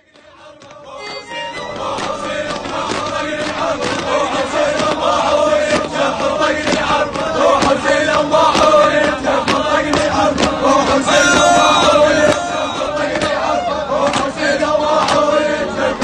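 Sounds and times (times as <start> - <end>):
rhythmic handclaps: 0.0 - 16.0
men chanting in unison: 1.8 - 16.0.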